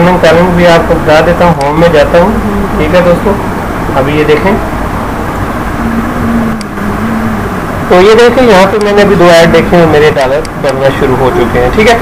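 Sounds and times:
background rumble and hiss: 0.0s - 12.0s.

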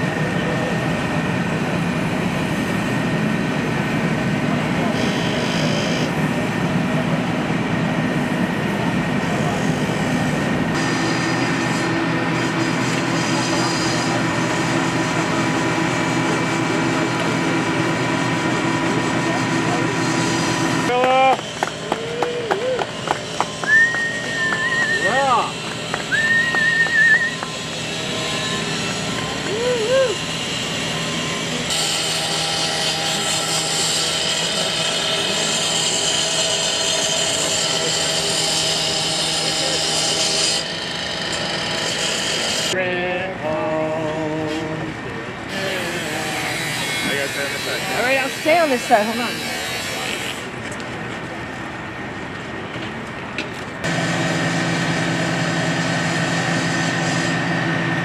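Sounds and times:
power tool cutting metal: 4.8s - 6.3s, 9.2s - 22.0s, 22.7s - 42.8s, 45.5s - 50.6s, 53.8s - 57.8s.

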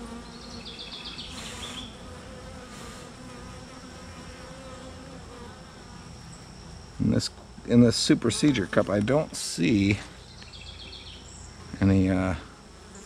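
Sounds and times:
honey bees buzzing: 0.0s - 13.0s.

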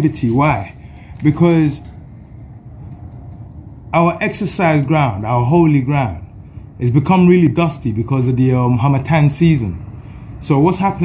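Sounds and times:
steady low background noise: 0.0s - 11.0s.

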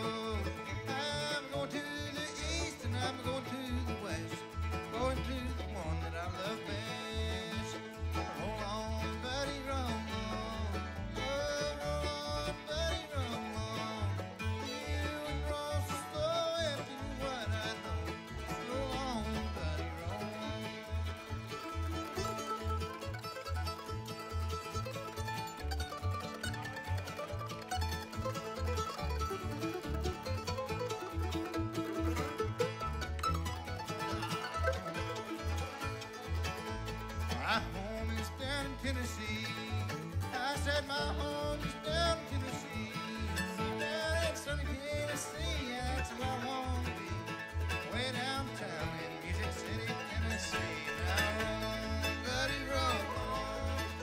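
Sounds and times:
acoustic guitar: 0.0s - 54.0s
banjo: 0.0s - 54.0s
fiddle: 0.0s - 54.0s
mandolin: 0.0s - 54.0s
upright bass: 0.0s - 54.0s.

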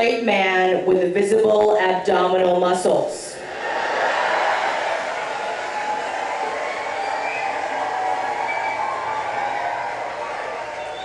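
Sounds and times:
audience laughter: 3.4s - 9.8s
audience applause: 3.4s - 11.0s.

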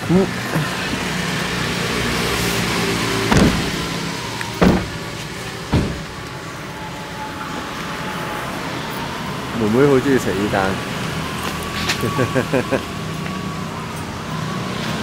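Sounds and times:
car engine and road noise: 0.0s - 15.0s
heavy thumps: 3.3s - 4.0s, 4.6s - 6.3s.

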